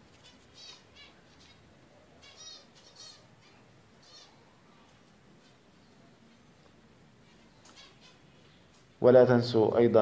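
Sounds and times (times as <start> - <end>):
finch chirping: 0.1 - 4.5, 7.5 - 8.8.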